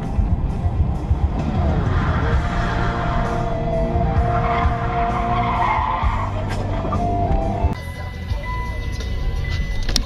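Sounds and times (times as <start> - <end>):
tyres skidding: 0.0 - 10.0
vehicle engine running hard: 0.0 - 10.0.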